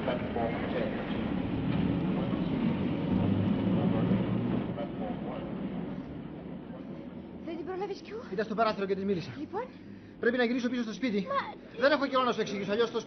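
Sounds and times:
train rumble at station: 0.0 - 8.9.

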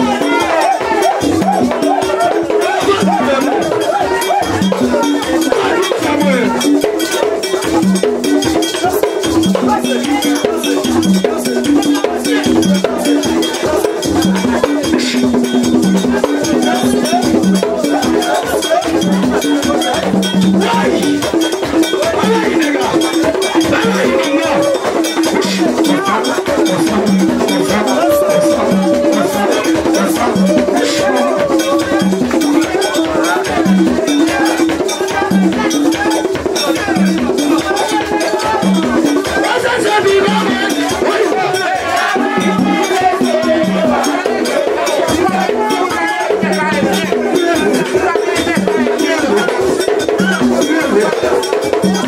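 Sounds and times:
drums: 0.0 - 52.0
struck metal bell: 0.1 - 39.5
person singing: 22.2 - 52.0.

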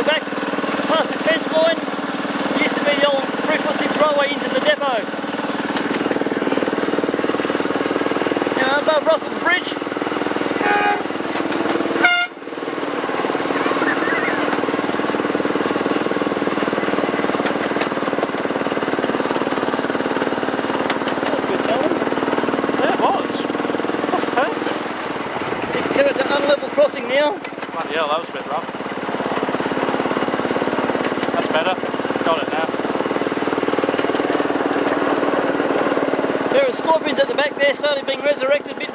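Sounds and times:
miniature locomotive humming: 0.0 - 38.9
short horn toot: 10.6 - 11.2, 12.0 - 12.4
wheels clicking on rails: 12.8 - 38.9
wavering high tones: 13.5 - 14.6.

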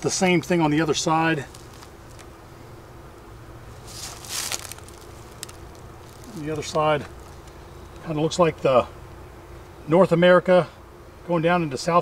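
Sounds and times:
rustle of handling: 0.0 - 2.4, 3.7 - 8.1
honeybee colony humming: 0.0 - 12.0.

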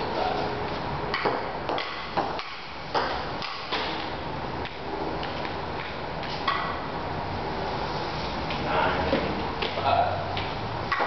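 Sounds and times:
ping-pong ball hit and bouncing: 1.1 - 4.8, 10.4 - 11.0.

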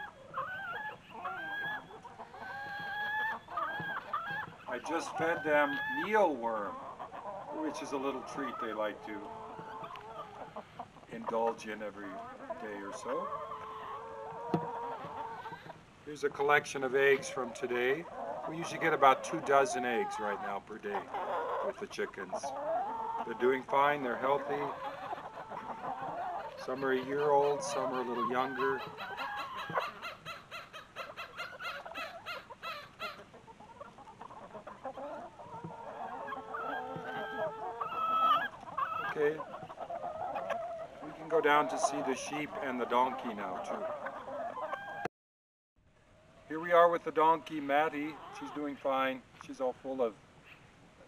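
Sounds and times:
hens calling: 0.0 - 45.1, 46.2 - 50.7
hens clucking: 0.0 - 45.1, 46.2 - 50.7.

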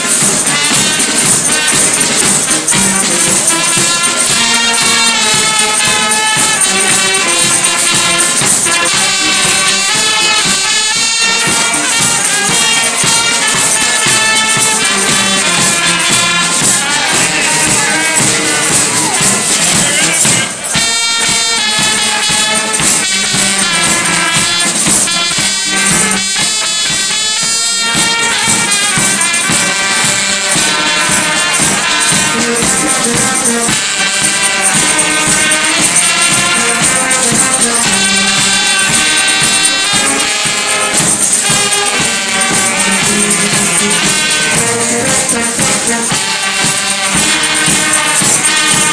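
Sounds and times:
bass drum: 0.0 - 48.9
brass band playing: 0.0 - 48.9
hand shaker percussion: 0.0 - 48.9
snare drum: 0.0 - 48.9.

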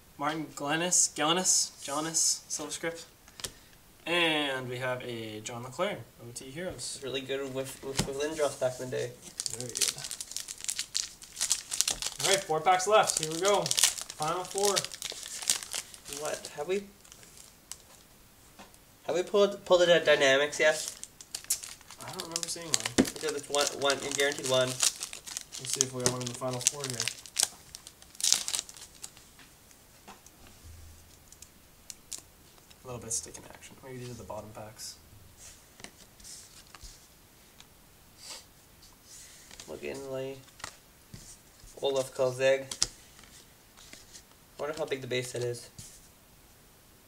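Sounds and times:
wrapper crinkling: 7.7 - 18.1, 20.5 - 29.4, 31.0 - 32.8.

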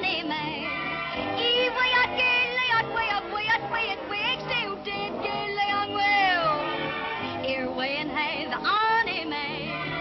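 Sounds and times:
woman singing with orchestra: 0.0 - 10.0.

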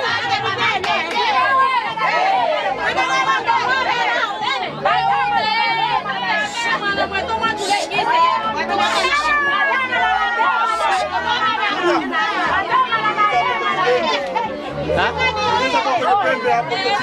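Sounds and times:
overlapping chatter of voices: 0.0 - 17.0.

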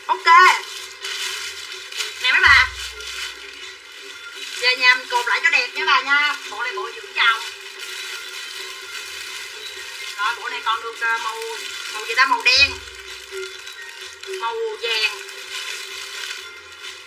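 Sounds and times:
plastic bags crinkling: 0.0 - 17.0
person speaking: 2.2 - 3.2, 10.2 - 13.1.

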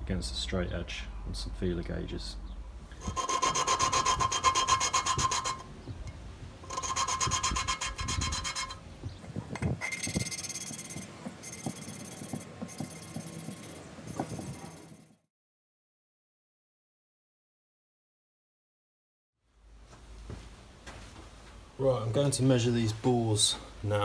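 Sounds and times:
valve grinding against seat: 3.0 - 5.7, 9.9 - 14.9.

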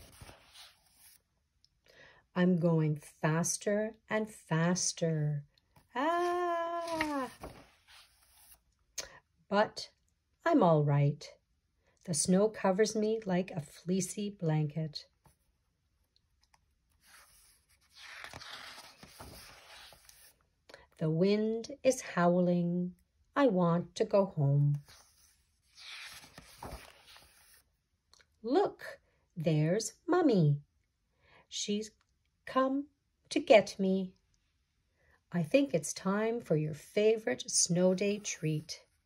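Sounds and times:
book page turning rustle: 0.0 - 1.2, 6.0 - 8.6, 17.0 - 20.4, 24.7 - 27.6.

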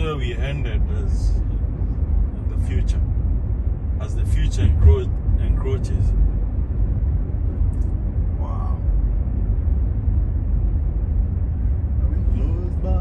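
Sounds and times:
road and tyre noise in car cabin: 0.0 - 13.0.

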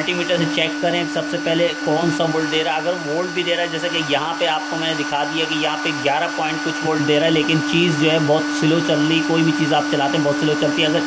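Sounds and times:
cooling fan whine: 0.0 - 11.0
man talking: 0.0 - 11.0.

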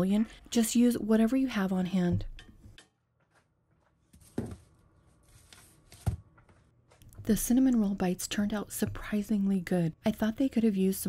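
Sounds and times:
faint handling rustle: 3.3 - 7.0.

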